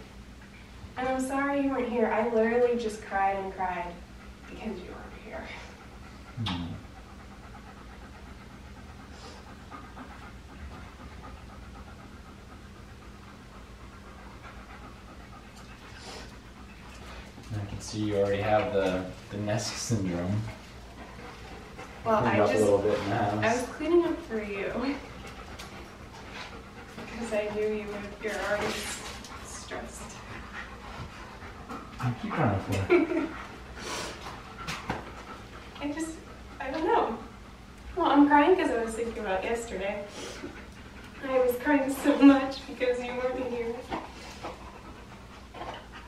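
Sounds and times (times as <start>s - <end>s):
low steady hum: 0.0s - 46.0s
dog panting: 0.2s - 46.0s.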